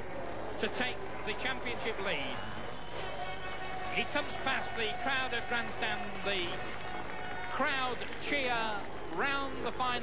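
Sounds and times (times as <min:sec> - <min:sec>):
motocross bike engine: 0:00.0 - 0:10.0.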